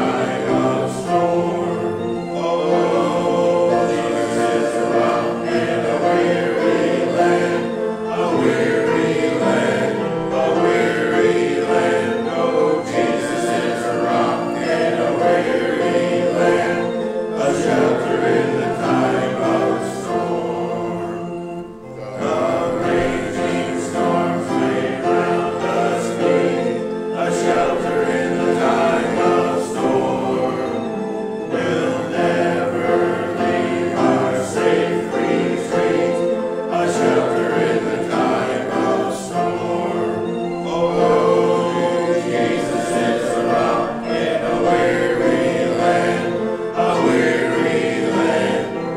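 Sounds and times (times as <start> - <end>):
group singing a hymn: 0.0 - 48.9.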